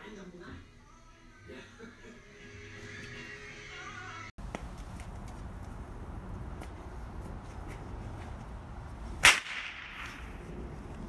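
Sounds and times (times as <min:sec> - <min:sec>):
whip crack with echo: 0:09.2 - 0:10.4.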